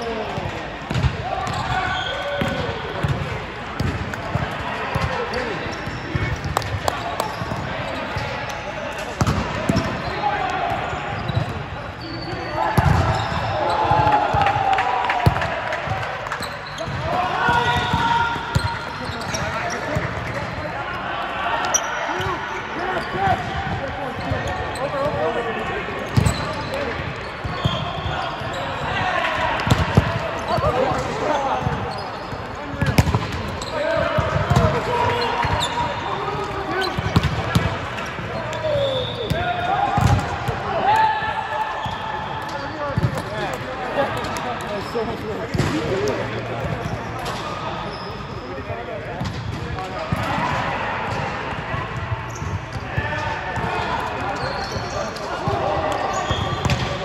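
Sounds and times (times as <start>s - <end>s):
players calling: 1.1s - 48.7s
sneakers squeaking on court: 3.8s - 8.6s, 9.2s - 14.1s, 15.3s - 20.7s, 26.0s - 29.0s, 29.7s - 40.2s, 41.8s - 48.6s, 52.2s - 52.8s, 53.6s - 57.0s.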